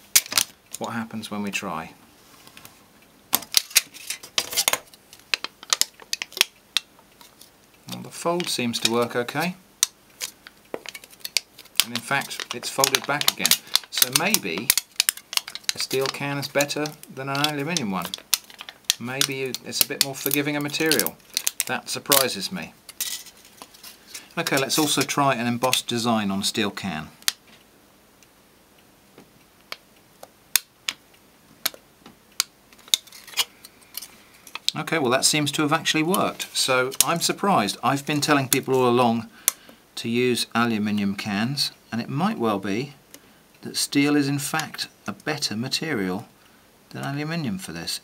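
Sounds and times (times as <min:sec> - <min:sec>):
thin sheet metal clicking: 0:07.9 - 0:22.2.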